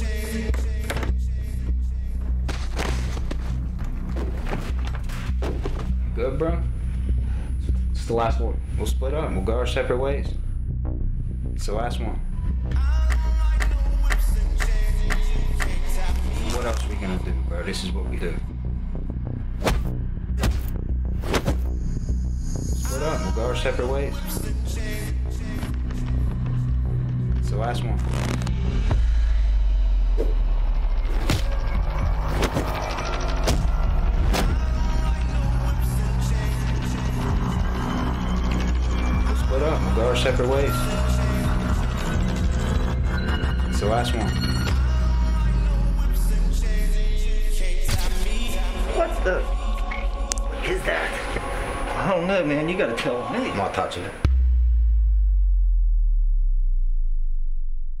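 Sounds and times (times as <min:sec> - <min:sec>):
deep low rumble: 0:24.1 - 0:52.0, 0:54.2 - 0:58.0
deep sub-bass boom: 0:54.2 - 0:58.0.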